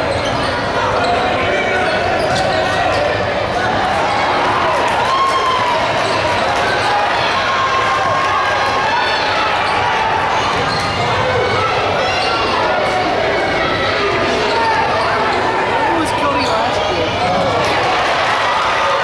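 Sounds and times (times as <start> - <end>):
crowd shouting and talking: 0.0 - 19.0.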